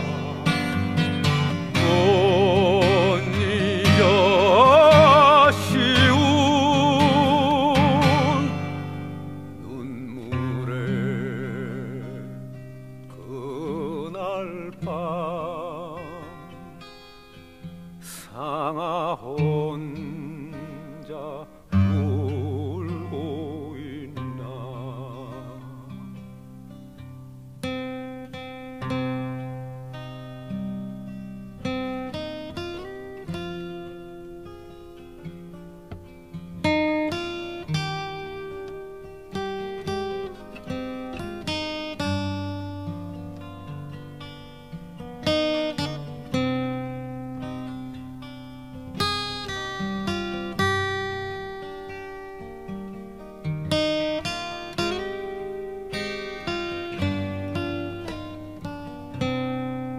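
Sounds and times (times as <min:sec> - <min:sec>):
acoustic guitar instrumental: 0:00.0 - 0:59.9.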